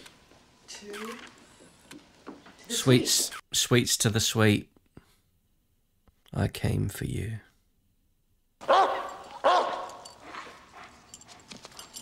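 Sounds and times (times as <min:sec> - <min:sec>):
dog barking: 0:08.6 - 0:10.9.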